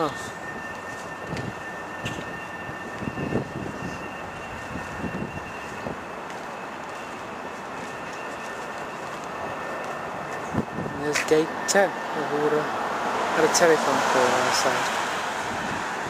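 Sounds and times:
faint high whine: 0.0 - 15.1.

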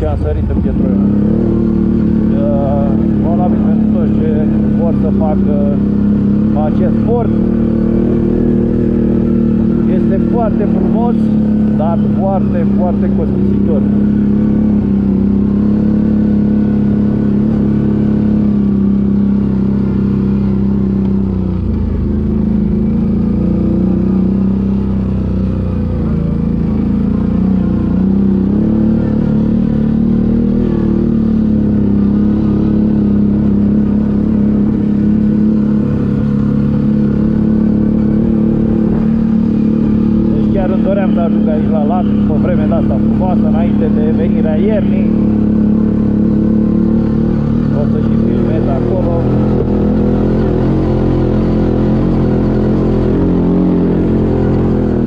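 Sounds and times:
atv engine running: 0.0 - 55.0.

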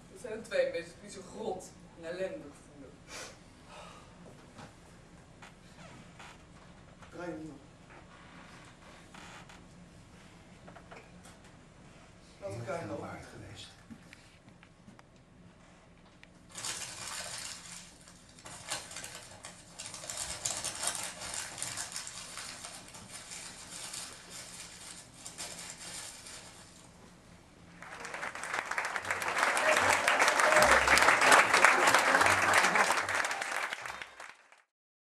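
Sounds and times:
audience applauding: 27.8 - 34.7.

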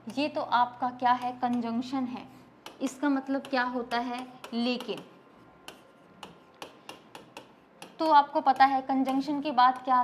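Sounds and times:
pen tip tapping on board: 2.6 - 5.1, 5.7 - 10.0.

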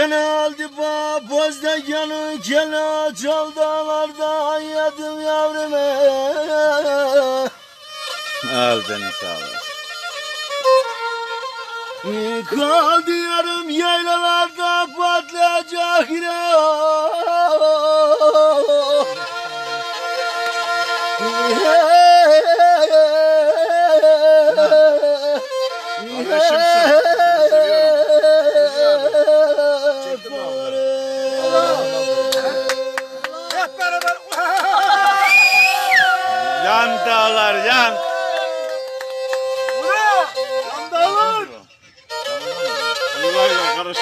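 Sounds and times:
bowed fiddle folk music: 0.0 - 44.0
person singing: 12.0 - 33.8.

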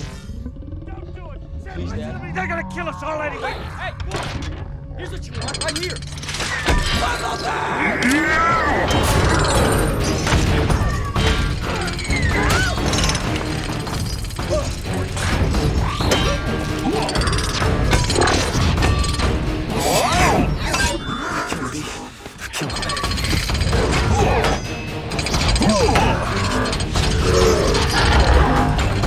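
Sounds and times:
robot mechanical whirring and ratcheting: 5.1 - 7.3, 8.9 - 19.4, 22.5 - 29.0.

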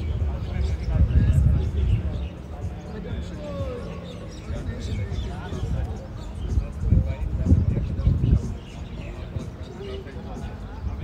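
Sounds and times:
distant voices talking: 0.0 - 11.0.

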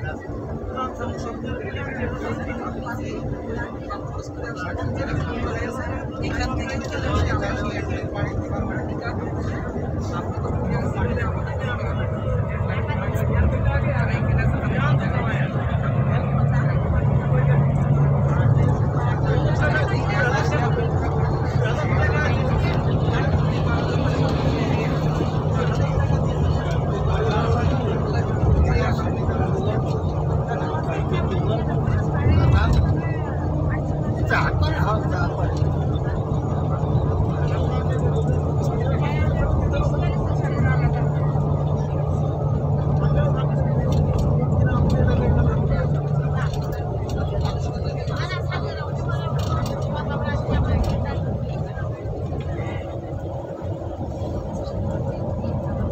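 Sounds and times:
engine and road hum in vehicle: 0.0 - 55.9
voices: 0.0 - 55.9.

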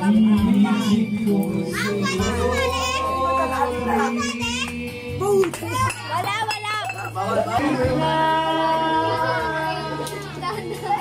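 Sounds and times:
background music with held notes: 0.0 - 11.0
children chattering and squealing: 0.6 - 11.0.

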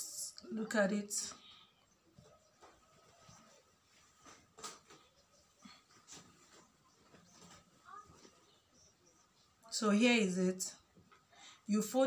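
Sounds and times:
cloth rustling: 2.1 - 8.8.

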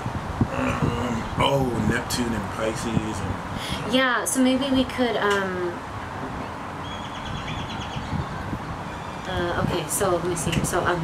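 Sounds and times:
low outdoor rumble: 0.0 - 11.0
bird trilling: 6.8 - 9.5.

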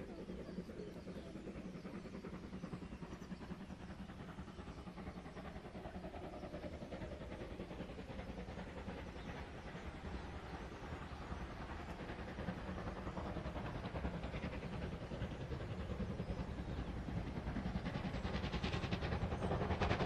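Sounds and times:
distant steam locomotive chuffing: 0.0 - 20.0.

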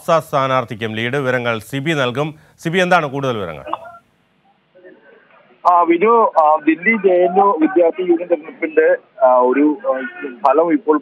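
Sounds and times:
person talking over telephone: 5.8 - 11.0.

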